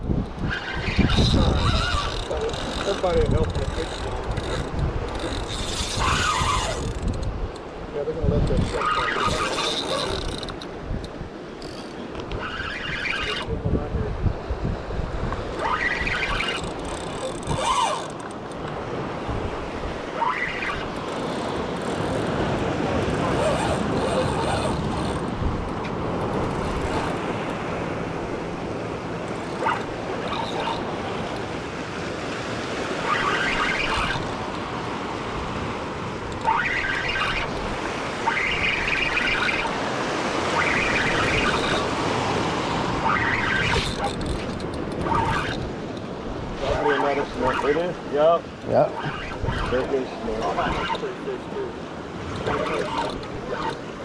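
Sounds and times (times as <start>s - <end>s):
surf on sea water: 0.0s - 54.0s
wind: 0.0s - 54.0s.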